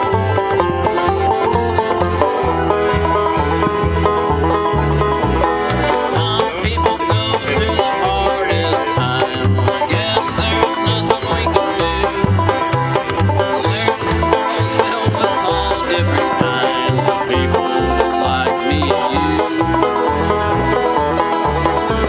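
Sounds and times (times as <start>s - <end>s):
accordion held notes: 0.0s - 22.0s
plucked banjo rolls: 0.0s - 22.0s
upright bass plucking: 0.0s - 22.0s.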